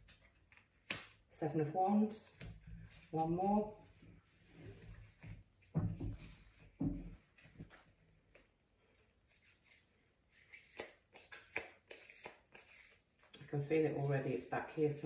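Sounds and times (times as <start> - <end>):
cards shuffling: 10.4 - 13.3.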